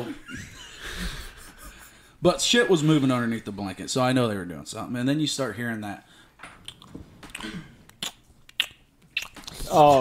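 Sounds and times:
wet mouth clicks and smacks: 6.6s - 9.7s.

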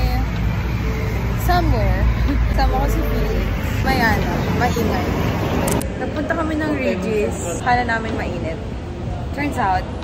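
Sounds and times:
woman speaking: 0.0s - 0.3s, 1.4s - 5.2s
street traffic rumble: 0.0s - 10.0s.

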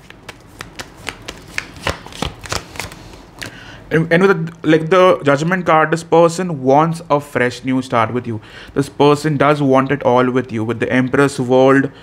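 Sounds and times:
cards being shuffled: 0.0s - 3.6s.

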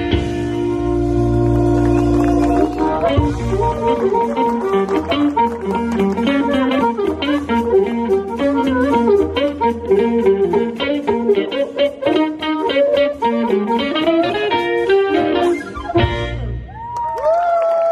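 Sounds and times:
blues harmonica: 0.0s - 16.5s
drums with steady beat: 0.0s - 16.5s
electric bass: 0.0s - 17.0s
electric guitar: 0.0s - 17.9s.

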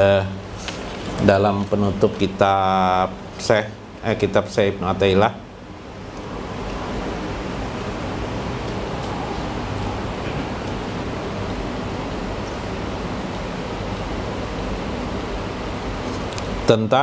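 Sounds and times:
microphone background hiss: 0.0s - 17.0s.

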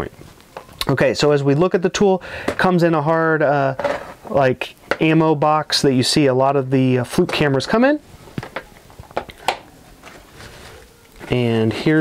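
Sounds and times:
fabric rustling: 8.0s - 11.5s.

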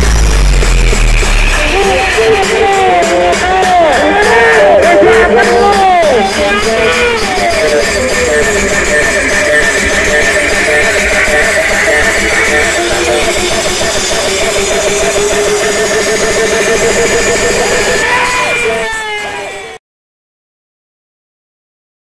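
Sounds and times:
wavering pitch-bending lead melody: 0.0s - 19.2s
loud music through speakers: 0.0s - 19.8s.

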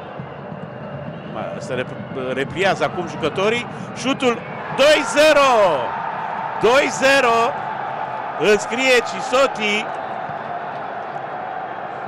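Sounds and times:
commentator shouting excitedly: 4.8s - 5.8s.

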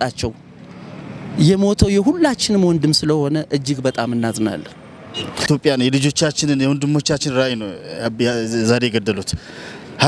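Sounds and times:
man speaking into microphone: 0.0s - 0.4s, 1.3s - 10.0s.

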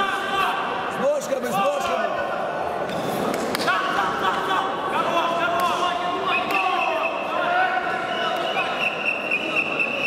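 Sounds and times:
crowd shouting in sports hall: 0.0s - 10.0s.

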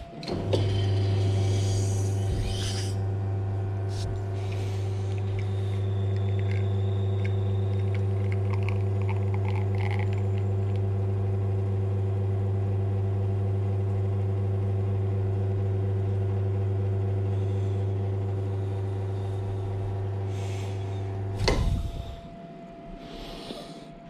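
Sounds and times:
espresso machine pump humming: 0.0s - 22.3s.

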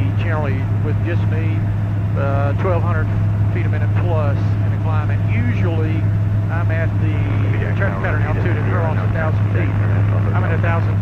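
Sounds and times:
light aircraft engine drone: 0.0s - 11.0s
man talking: 0.0s - 11.0s.

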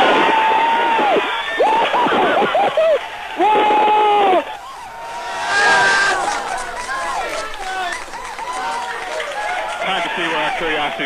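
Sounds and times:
crowd cheering and yelling: 0.0s - 11.0s
long high yell: 5.0s - 7.8s.

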